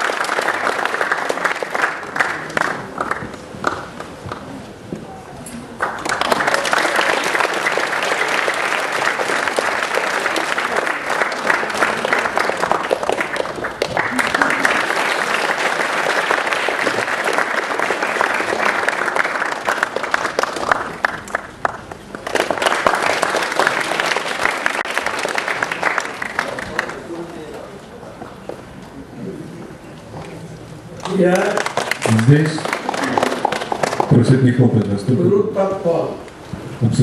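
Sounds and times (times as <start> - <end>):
audience applauding: 0.0 - 4.7, 5.7 - 27.6, 31.0 - 34.8.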